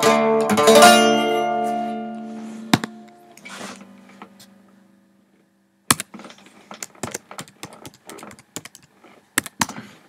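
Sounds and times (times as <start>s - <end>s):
computer keyboard clicks: 6.8s - 9.8s.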